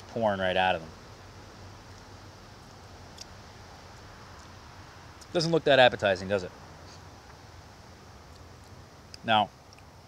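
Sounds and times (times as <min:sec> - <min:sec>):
faint background hiss: 0:00.0 - 0:10.0.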